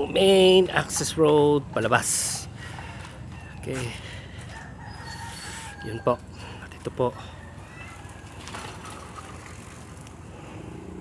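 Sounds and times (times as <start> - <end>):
outdoor background noise: 0.0 - 11.0
distant rooster crowing: 4.2 - 8.8.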